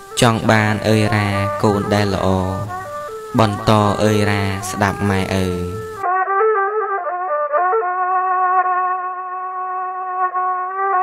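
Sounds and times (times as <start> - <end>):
instrumental accompaniment: 0.0 - 11.0
man singing slow song: 0.1 - 6.0.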